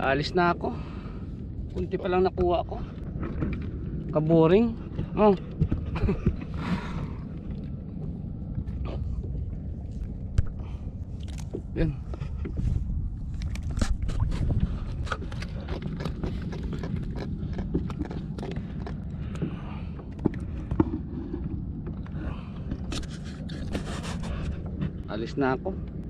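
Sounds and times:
wind and water rumble: 0.0 - 26.0
gear handling on plastic kayak: 13.4 - 19.6.

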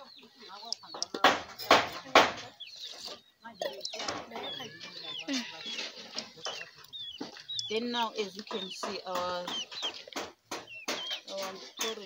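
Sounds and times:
chickens clucking: 0.0 - 12.0
high chirping calls: 2.3 - 12.0
stick knocking in a plastic bucket: 6.1 - 12.0.

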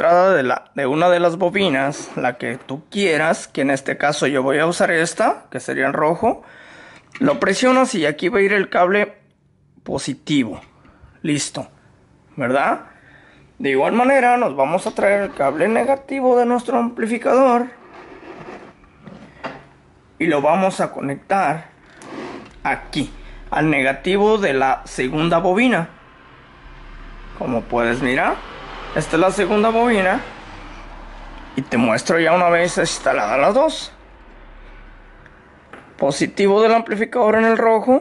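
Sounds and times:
steady low hum: 0.0 - 37.8.

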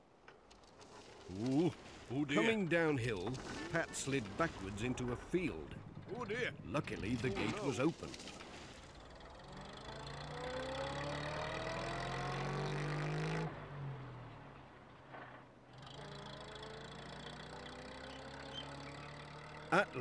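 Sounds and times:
van engine revving: 9.2 - 13.9.

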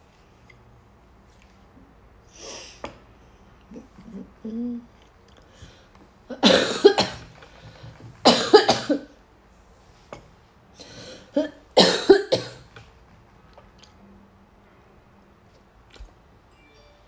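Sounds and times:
woman coughing: 6.3 - 7.2, 8.2 - 9.1, 11.3 - 12.6.

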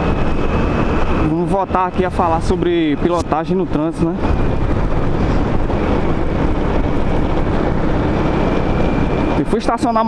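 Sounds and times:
wind rushing over microphone: 0.0 - 10.0.

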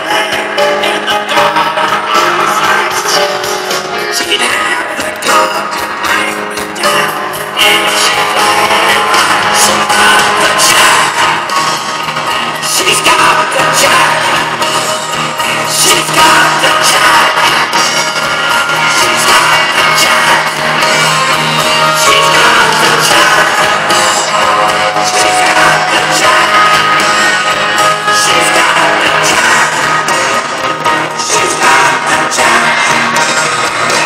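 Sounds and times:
drums: 0.0 - 34.0
electric guitars: 0.0 - 34.0
rock band playing through speakers: 0.0 - 34.0.

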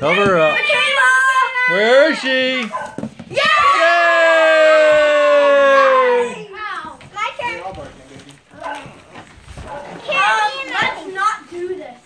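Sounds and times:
children chattering: 6.1 - 12.0.

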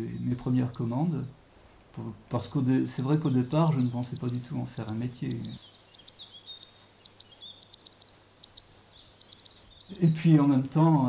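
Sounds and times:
bird high call notes: 0.5 - 1.3, 2.3 - 10.9.

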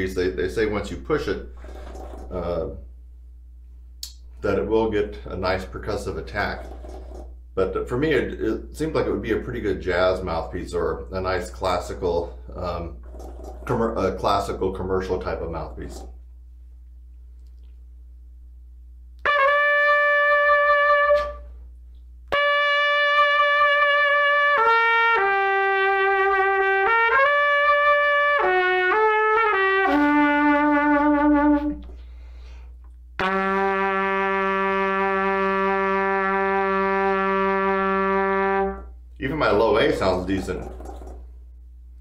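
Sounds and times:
trumpet playing: 1.5 - 2.5, 6.2 - 7.3, 19.2 - 21.6, 22.3 - 31.9, 33.2 - 39.0.

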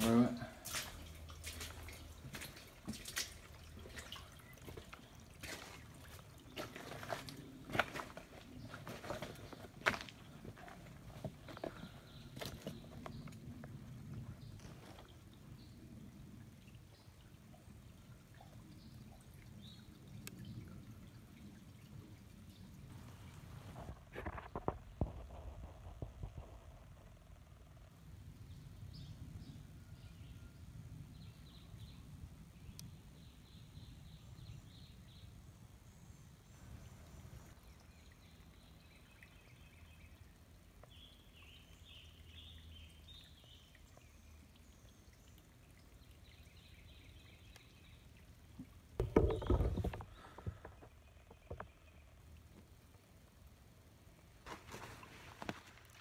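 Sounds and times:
sharp drips and knocks: 0.0 - 26.8, 37.5 - 56.0
water trickling over rocks: 0.0 - 56.0.

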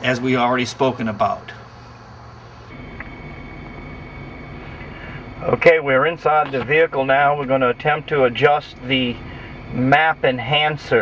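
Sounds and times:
faint thin whine: 0.0 - 11.0
truck engine idling: 0.0 - 11.0.

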